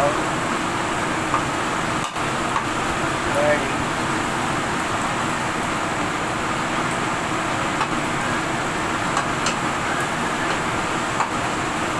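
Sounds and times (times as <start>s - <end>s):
gas burner roaring: 0.0s - 11.9s.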